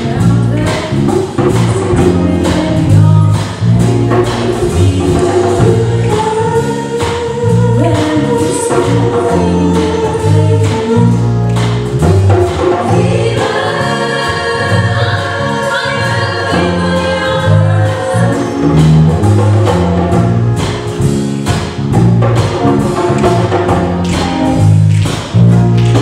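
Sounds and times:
band accompaniment: 0.0 - 26.0
pulsing bass line: 0.0 - 26.0
choir singing in harmony: 4.6 - 11.4, 12.2 - 18.8.

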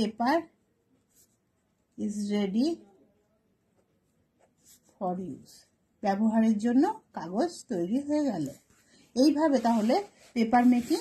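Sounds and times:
pen scratching on paper: 8.3 - 11.0.

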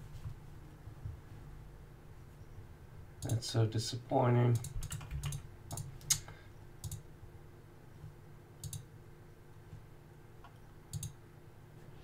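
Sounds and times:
faint electrical hum: 0.0 - 12.0
computer mouse clicks: 4.6 - 7.0, 8.6 - 8.9, 10.4 - 11.2.

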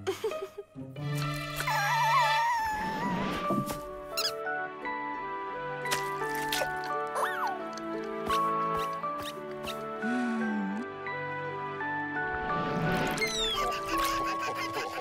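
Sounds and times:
cartoon background music: 0.0 - 15.0
squeaky cartoon voice sounds: 1.6 - 2.9, 4.2 - 4.4, 7.1 - 7.6, 13.2 - 15.0.

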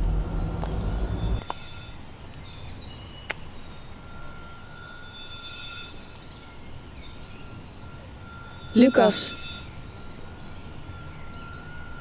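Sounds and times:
low rumble: 0.0 - 1.5
woodland ambience: 0.0 - 12.0
thin high whistles: 1.0 - 2.2, 4.0 - 12.0.

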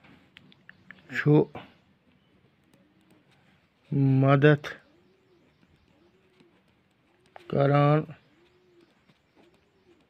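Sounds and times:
faint low bird calls: 0.0 - 10.0.

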